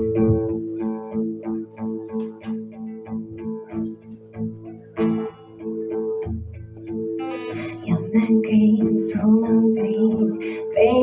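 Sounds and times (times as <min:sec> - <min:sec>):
acoustic guitar picking: 0:00.0 - 0:11.0.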